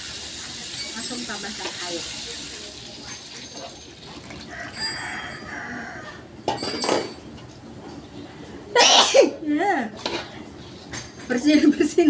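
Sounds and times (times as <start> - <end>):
water sizzling in hot wok: 0.0 - 4.0.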